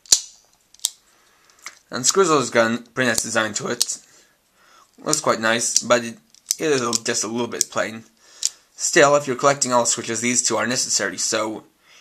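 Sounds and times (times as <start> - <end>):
plastic toy pieces clicking: 0.0 - 1.8, 3.1 - 4.0, 5.1 - 7.8, 8.4 - 8.6.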